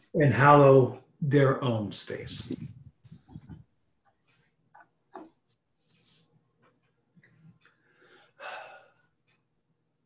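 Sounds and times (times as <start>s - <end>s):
man breathing: 7.6s - 9.2s.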